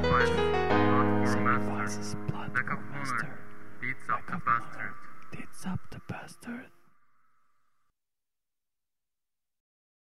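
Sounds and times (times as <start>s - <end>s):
person whispering: 1.3s - 3.4s, 4.2s - 6.8s.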